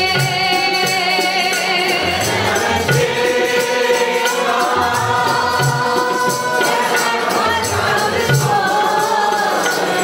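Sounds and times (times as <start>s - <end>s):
congregation singing: 0.0s - 10.0s
harmonium: 0.0s - 10.0s
tabla beat: 0.0s - 10.0s.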